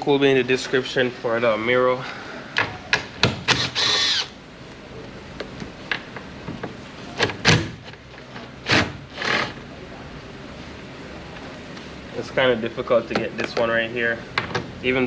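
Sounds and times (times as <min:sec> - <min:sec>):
cordless drill whirring: 0:03.5 - 0:04.3.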